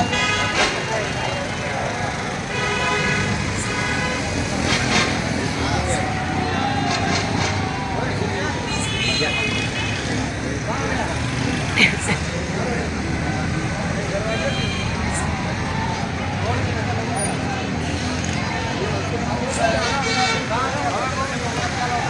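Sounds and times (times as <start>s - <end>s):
crowd voices and calls: 0.0s - 22.0s
slow vehicle traffic: 0.0s - 22.0s.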